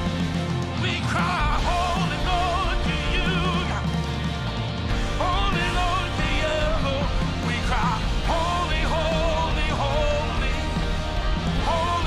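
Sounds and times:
drum kit: 0:00.0 - 0:12.0
steady bass line: 0:00.0 - 0:12.0.

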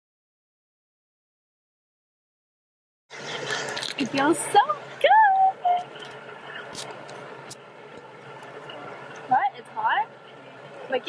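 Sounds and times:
hot tub water churning: 0:03.1 - 0:11.0.

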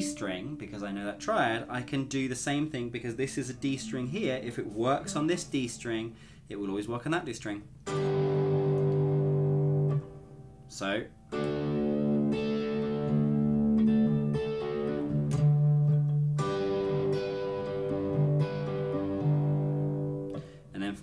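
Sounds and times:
electric guitar chords ringing: 0:00.0 - 0:02.2, 0:07.9 - 0:20.7.

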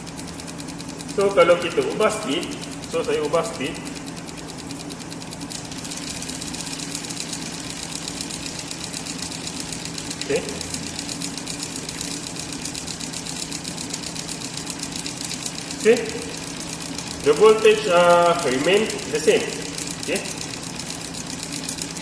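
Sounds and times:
motor hum: 0:00.0 - 0:22.0.

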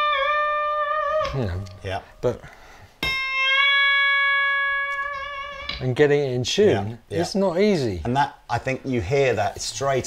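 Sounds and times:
electric guitar bent note: 0:03.0 - 0:05.9.

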